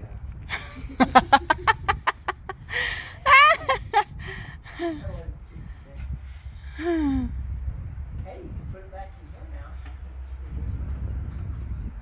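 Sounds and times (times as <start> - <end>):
person laughing: 0.5 - 5.1.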